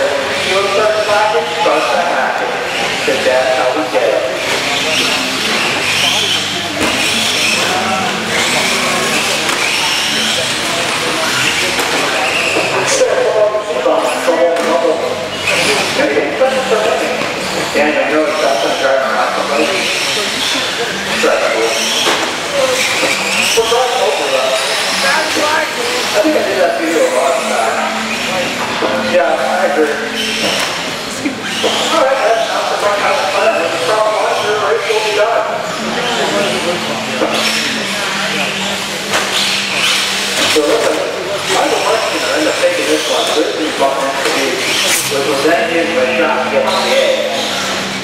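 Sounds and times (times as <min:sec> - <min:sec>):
voices talking: 0:00.0 - 0:48.0
rc car motors whining: 0:04.4 - 0:13.3, 0:15.0 - 0:29.1, 0:29.8 - 0:46.0.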